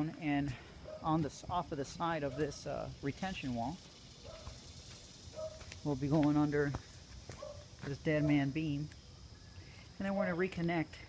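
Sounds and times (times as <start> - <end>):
man speaking: 10.0 - 11.0.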